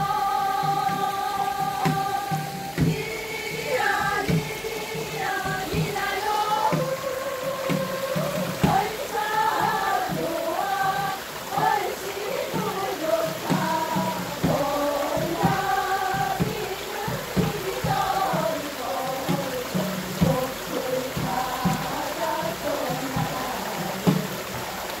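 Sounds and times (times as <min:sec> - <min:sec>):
steady hiss: 0:00.0 - 0:25.0
voices singing together: 0:00.0 - 0:25.0.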